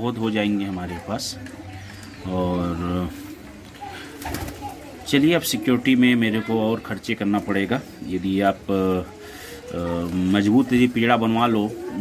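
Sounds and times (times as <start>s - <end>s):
pigeons pecking: 0.4s - 12.0s
pigeons cooing: 7.8s - 12.0s.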